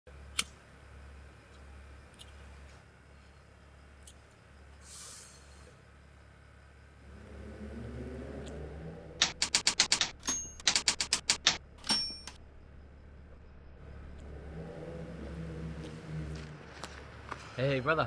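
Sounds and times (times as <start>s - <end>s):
typewriter keys clacking: 9.2s - 12.4s
typewriter bell ding: 9.8s - 11.1s, 11.8s - 12.4s.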